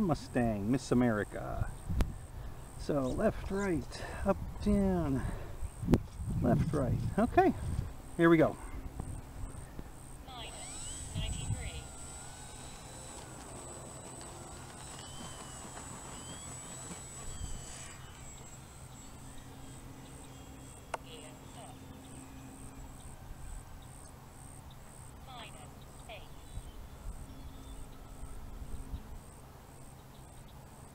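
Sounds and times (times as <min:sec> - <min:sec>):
model plane motor whine: 0:00.0 - 0:30.9.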